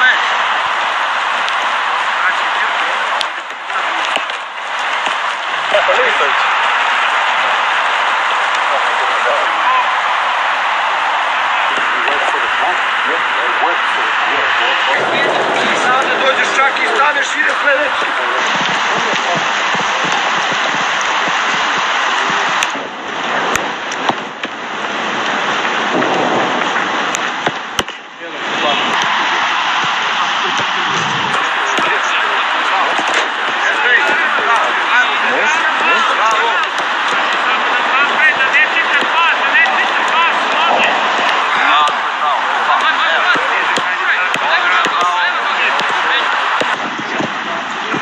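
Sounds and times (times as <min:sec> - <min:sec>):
heavy rain splashing: 0:00.0 - 0:48.0
footballs kicked and bouncing: 0:18.5 - 0:22.8.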